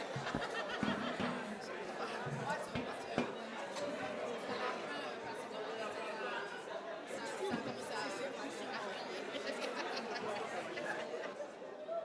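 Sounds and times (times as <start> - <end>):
low indistinct chatter: 0.0 - 12.0.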